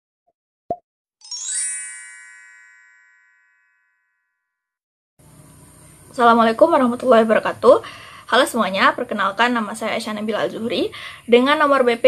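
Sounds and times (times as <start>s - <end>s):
shimmering chime sweeping up: 1.2s - 4.0s.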